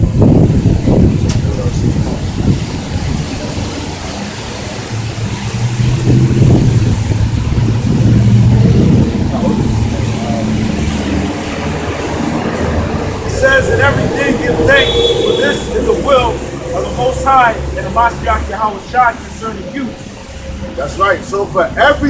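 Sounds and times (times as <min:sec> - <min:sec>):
low engine rumble: 0:00.0 - 0:22.0.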